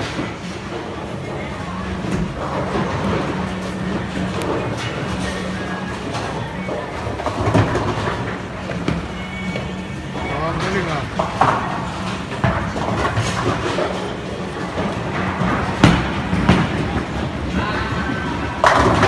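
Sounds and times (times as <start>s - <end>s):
bowling balls rolling: 0.0s - 19.0s.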